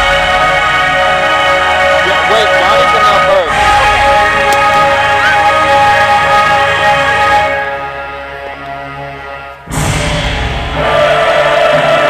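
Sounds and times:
music over sound system: 0.0 - 11.6
music track with heavy bass: 0.0 - 11.6.

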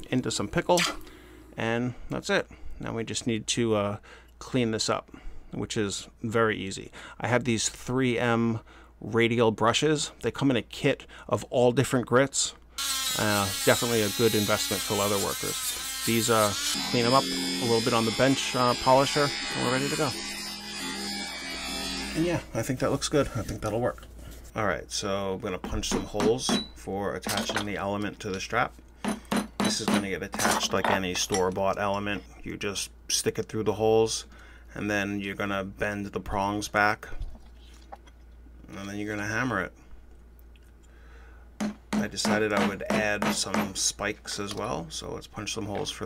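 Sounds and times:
bench polisher motor hum: 15.6 - 22.2.

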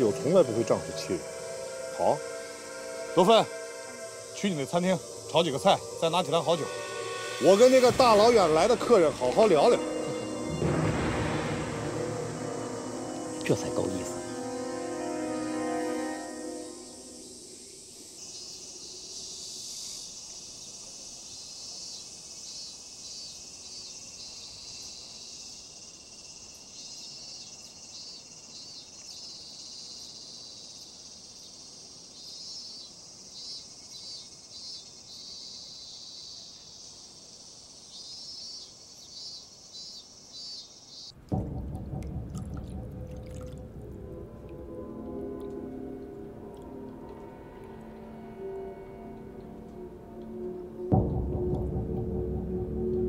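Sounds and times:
music: 0.0 - 17.8, 41.3 - 53.0
insects chirping: 0.0 - 53.0
low rumble: 41.3 - 53.0.

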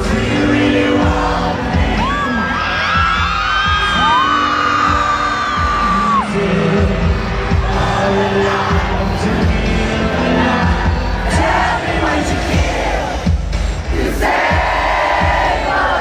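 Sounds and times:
drums: 0.0 - 16.0
fans screaming and cheering: 0.0 - 16.0.

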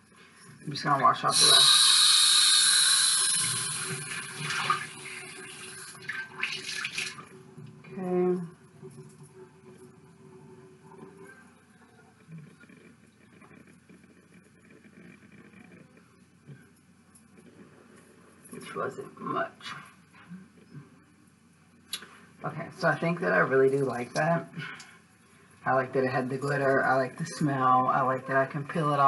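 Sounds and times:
sink tap running: 1.3 - 7.2.

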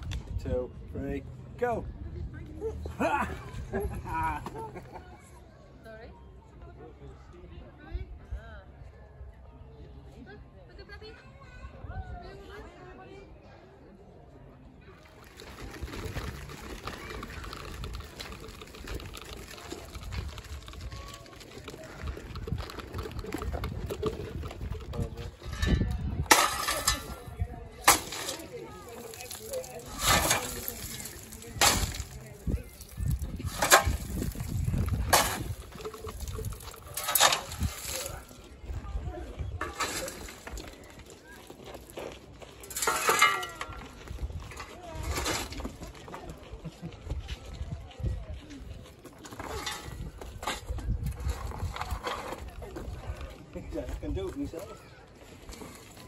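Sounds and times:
shovel scraping coal: 25.3 - 38.5, 39.6 - 44.0, 44.6 - 45.8, 49.2 - 52.7.

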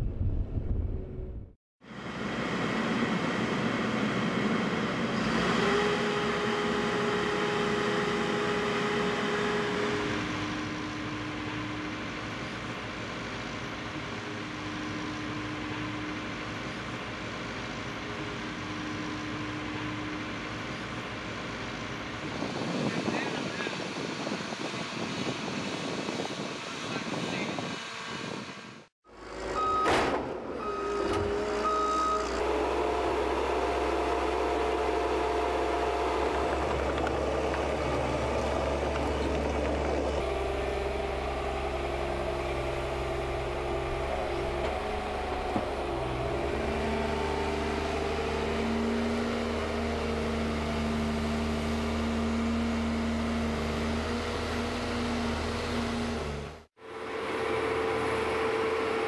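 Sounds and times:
tracked vehicle engine running: 0.0 - 59.0
reversing alarm beeping: 29.5 - 32.4.

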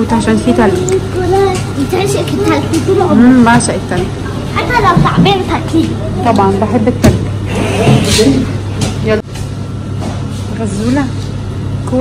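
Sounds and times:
people talking: 0.0 - 9.3, 10.5 - 12.0
steady low hum: 0.0 - 12.0.

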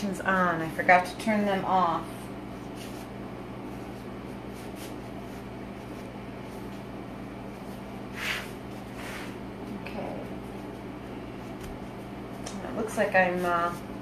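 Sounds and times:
air conditioner humming: 0.0 - 14.0.

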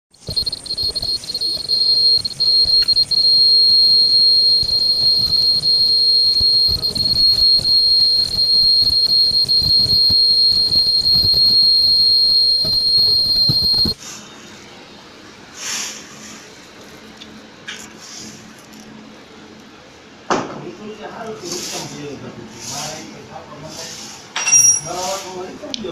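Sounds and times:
high-pitched machine whine: 0.2 - 14.0
low machine rumble: 0.4 - 14.0.

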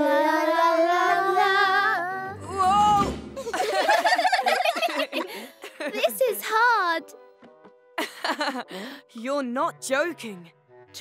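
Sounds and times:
cartoon children singing: 0.0 - 3.0.

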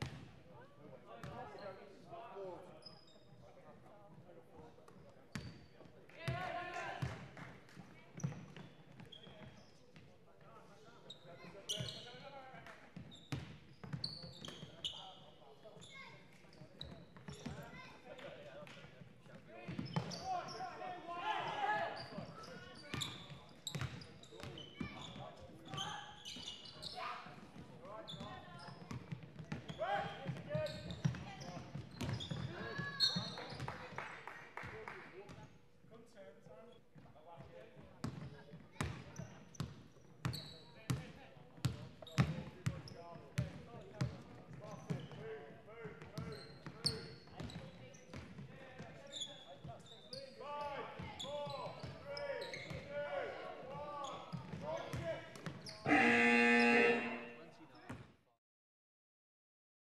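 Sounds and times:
sneakers squeaking: 2.6 - 3.5, 5.3 - 5.7, 8.2 - 10.1, 11.0 - 12.3, 13.0 - 17.8, 19.7 - 20.9, 21.9 - 33.8, 38.0 - 41.0, 41.6 - 45.2, 46.1 - 48.4, 49.1 - 50.4, 51.0 - 52.9, 54.0 - 58.0
players' voices echoing: 52.0 - 57.6
electronic scoreboard buzzer: 55.9 - 57.4.

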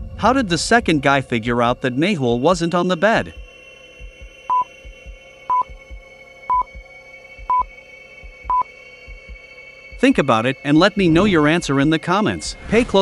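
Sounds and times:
faint steady drone: 0.0 - 12.6
short high beeps: 4.5 - 4.7, 5.5 - 5.8, 6.5 - 6.8, 8.5 - 8.7.

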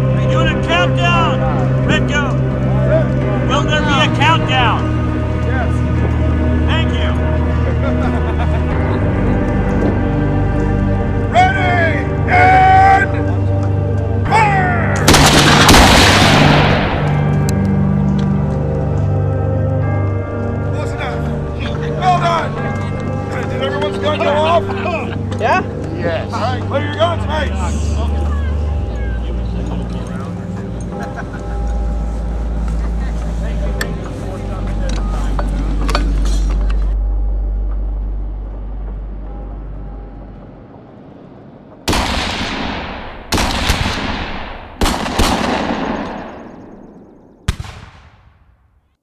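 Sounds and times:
music with low bass notes: 0.0 - 40.8
cannon shots: 15.0 - 17.3, 41.9 - 46.8, 47.4 - 48.6.

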